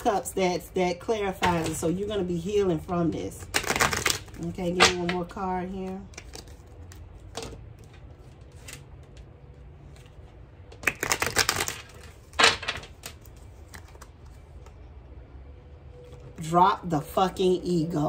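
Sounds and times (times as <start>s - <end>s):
cards being shuffled: 3.4s - 14.8s.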